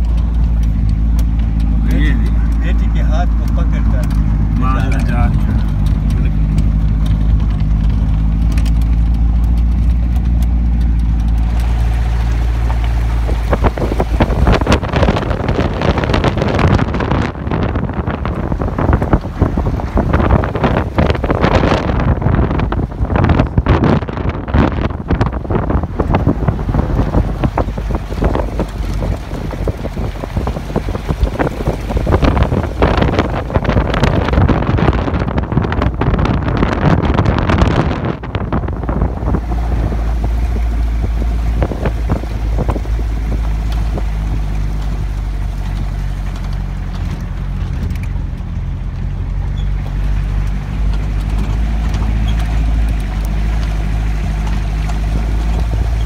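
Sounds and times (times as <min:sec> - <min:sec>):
vehicle rumbling on gravel road: 0:00.0 - 0:56.0
wind buffeting microphone: 0:00.0 - 0:56.0.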